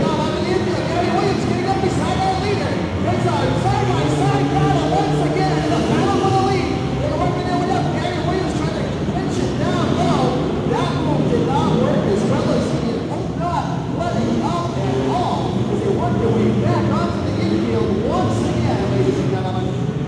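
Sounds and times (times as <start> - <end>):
truck engines revving: 0.0 - 20.0.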